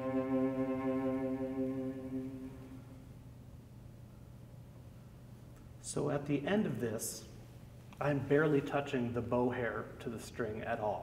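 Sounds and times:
cello long low note: 0.0 - 3.2.

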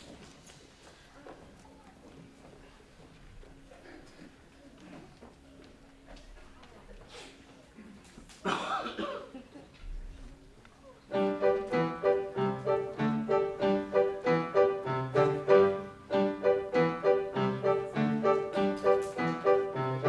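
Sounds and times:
upbeat piano: 11.1 - 20.0.

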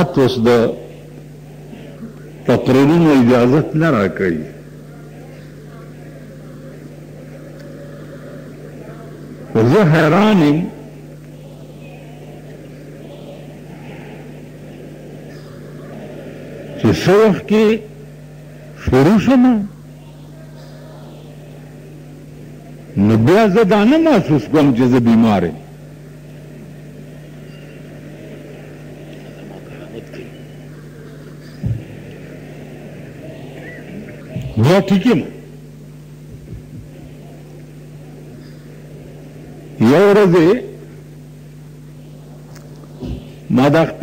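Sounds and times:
steady low hum: 0.0 - 44.0.

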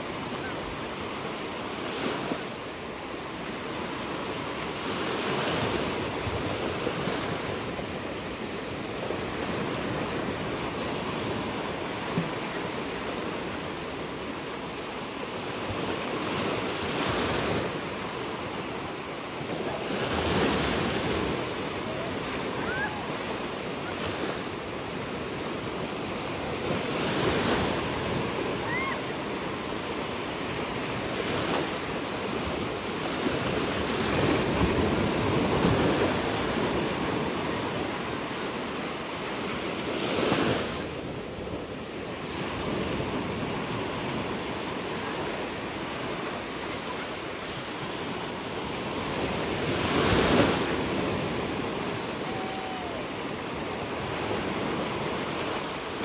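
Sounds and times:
sea waves: 0.0 - 56.0.

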